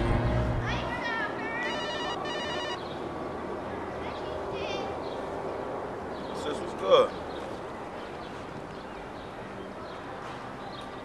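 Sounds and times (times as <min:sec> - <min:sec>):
phone ringtone trilling: 0:01.6 - 0:02.8.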